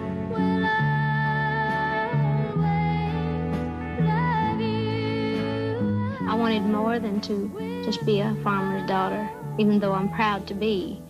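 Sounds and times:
background music: 0.0s - 11.0s
woman speaking: 6.2s - 11.0s.

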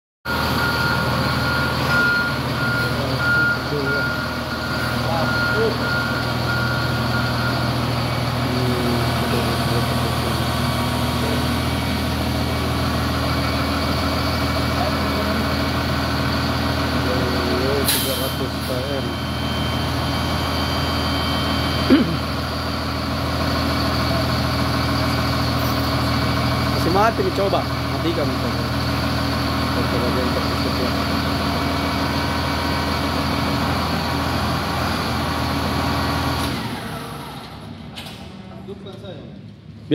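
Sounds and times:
repeating electronic beep: 0.3s - 10.1s, 13.6s - 22.7s
diesel engine idling: 0.3s - 38.9s.

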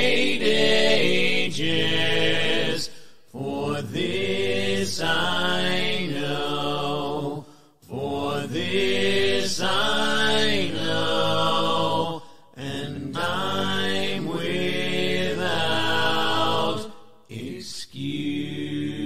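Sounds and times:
a cappella hymn singing: 0.0s - 19.0s.

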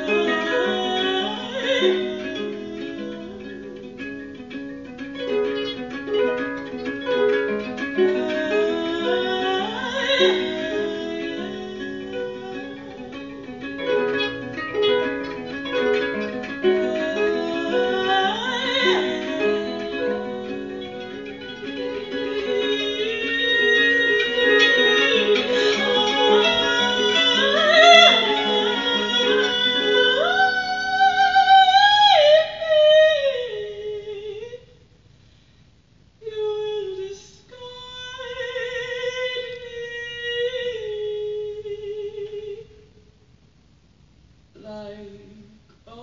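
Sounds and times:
woman singing with vibrato: 0.0s - 4.4s, 5.2s - 34.8s, 36.2s - 43.1s, 44.6s - 46.0s
harp plucked notes: 0.0s - 32.0s.

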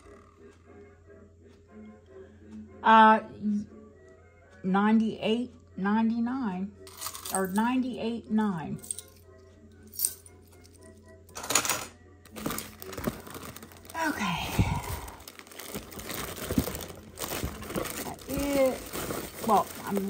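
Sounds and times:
plastic bags crinkling: 12.3s - 20.0s.

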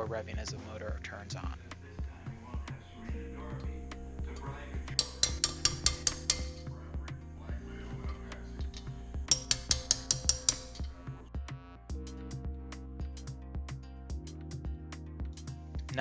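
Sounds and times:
background music with steady beat: 0.0s - 16.0s
hammer tapping on metal socket: 4.4s - 6.7s, 8.1s - 10.9s.

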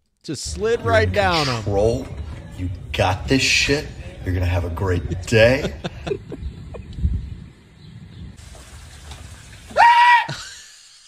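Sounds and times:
man screaming: 9.8s - 10.5s.

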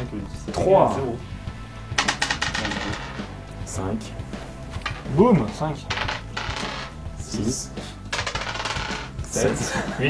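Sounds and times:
background music: 0.0s - 10.0s
die clattering on a table: 2.0s - 3.3s, 8.1s - 9.1s.

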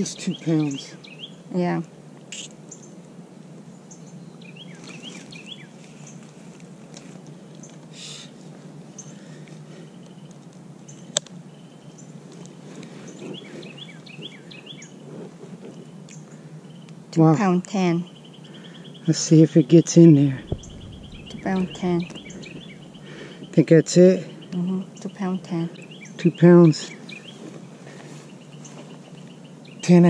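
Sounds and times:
small birds chirping: 0.0s - 30.0s
steady low hum: 18.1s - 28.5s.

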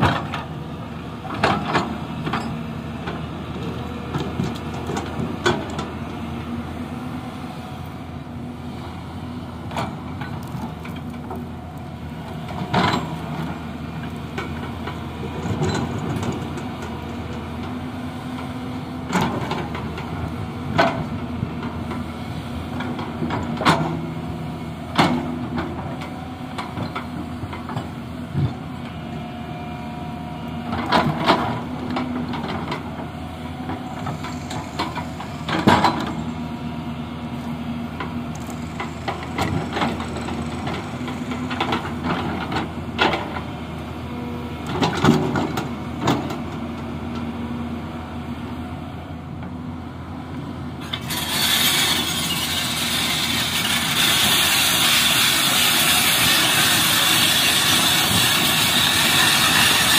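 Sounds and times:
excavator diesel engine running: 0.0s - 59.9s.

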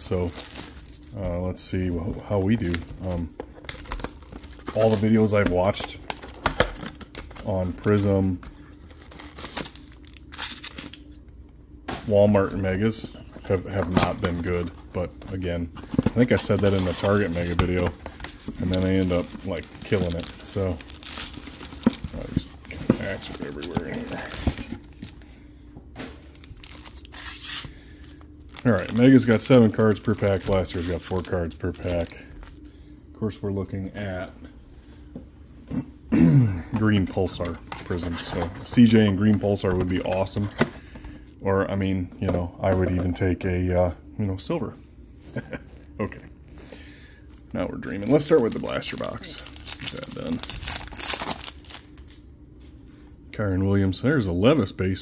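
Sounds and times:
foil packs crinkling and tearing: 0.0s - 1.2s, 1.8s - 11.1s, 12.1s - 25.2s, 26.2s - 32.7s, 47.8s - 52.2s.

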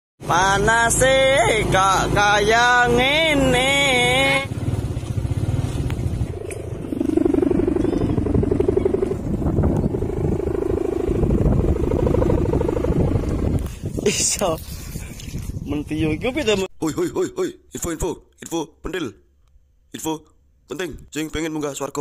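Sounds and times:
small motorcycle engine running: 4.0s - 13.7s.

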